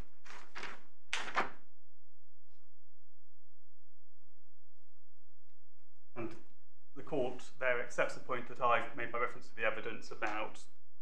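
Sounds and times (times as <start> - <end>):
paper rustling: 0.0 - 1.6.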